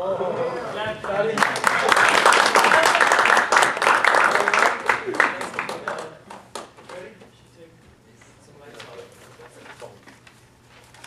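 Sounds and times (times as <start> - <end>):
audience applauding: 1.0 - 7.1.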